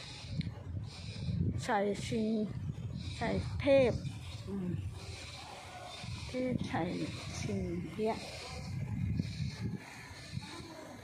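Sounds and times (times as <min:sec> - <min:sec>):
woman speaking: 0:01.6 - 0:02.5, 0:03.2 - 0:04.9, 0:06.3 - 0:08.5.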